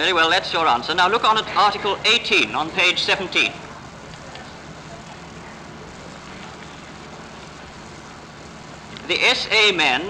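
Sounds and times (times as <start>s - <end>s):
recording hiss: 0.0s - 10.0s.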